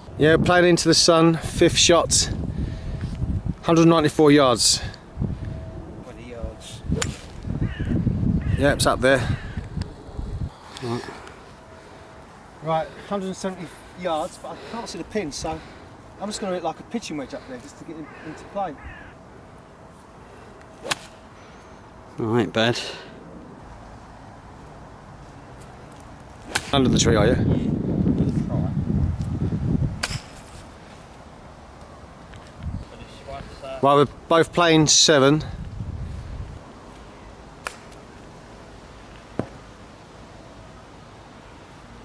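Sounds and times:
faint outdoor background: 0:00.0 - 0:42.0
low background noise: 0:00.0 - 0:42.0
golf ball struck by club: 0:06.9 - 0:07.4, 0:20.8 - 0:21.2, 0:26.5 - 0:26.8, 0:30.0 - 0:30.4.

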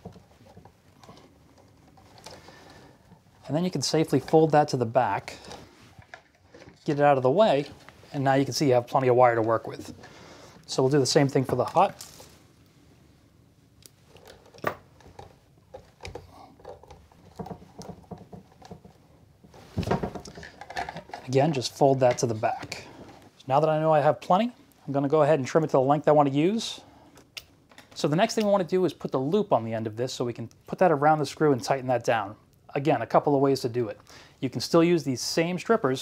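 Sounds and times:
small clicks and rustles of wire: 0:00.0 - 0:03.5.

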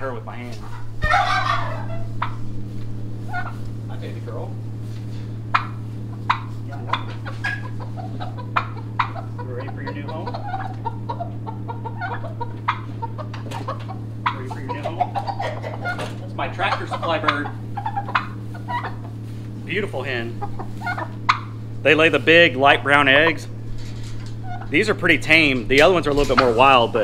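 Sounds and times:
hen clucking and squawking: 0:00.0 - 0:27.0
steady low hum: 0:00.0 - 0:27.0.

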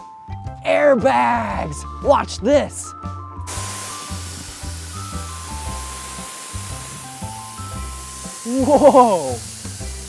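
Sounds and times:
compressed air hissing: 0:03.5 - 0:10.0.

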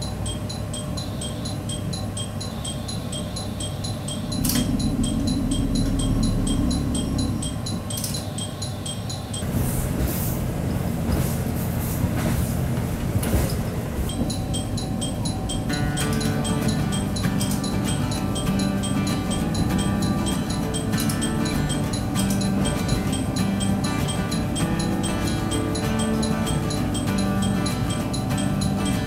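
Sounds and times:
train rumble: 0:01.4 - 0:29.0.

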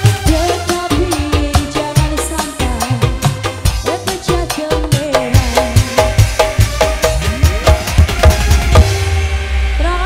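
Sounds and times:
woman singing: 0:00.0 - 0:06.4, 0:09.8 - 0:10.0
hand drums: 0:00.0 - 0:09.2
steady drum beat: 0:00.0 - 0:09.4
electric guitar: 0:00.0 - 0:10.0
keyboard: 0:00.0 - 0:10.0.

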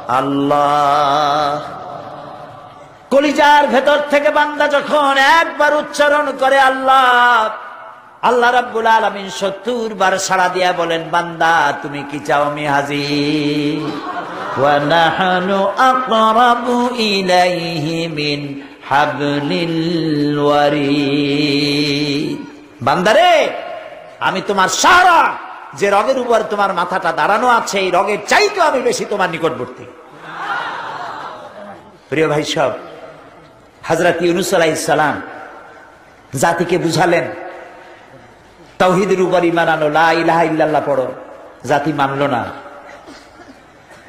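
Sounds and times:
man chanting melodically: 0:00.0 - 0:30.0, 0:31.9 - 0:42.9
man preaching: 0:00.0 - 0:30.1, 0:31.4 - 0:43.1
faint background noise: 0:00.0 - 0:44.0.

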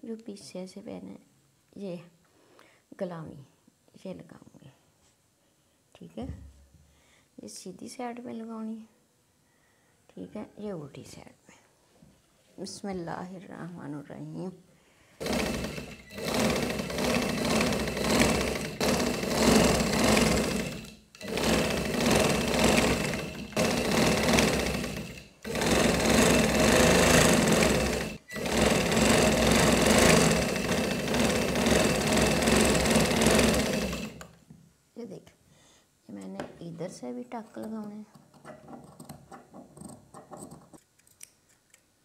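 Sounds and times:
sewing machine stitching fabric: 0:15.2 - 0:34.4.

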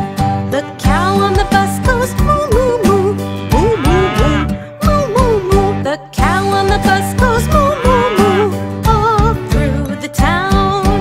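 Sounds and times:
upbeat children's song music: 0:00.0 - 0:11.0
cow mooing: 0:03.5 - 0:04.6, 0:07.3 - 0:08.6.

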